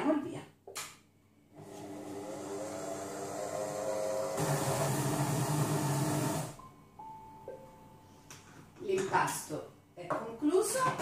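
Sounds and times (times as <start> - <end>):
kitchen machine motor humming: 1.6 - 6.6.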